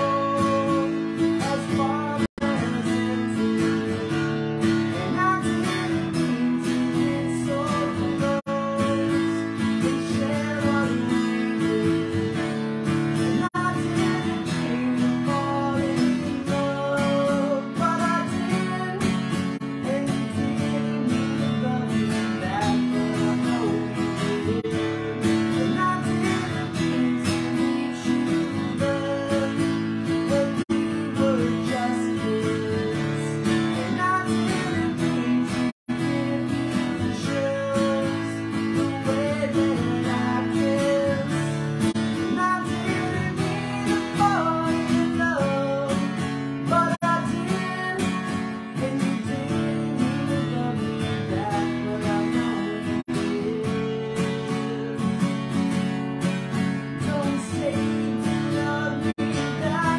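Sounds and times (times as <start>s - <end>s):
acoustic guitar strumming: 0.0s - 59.9s
man singing: 0.0s - 59.9s.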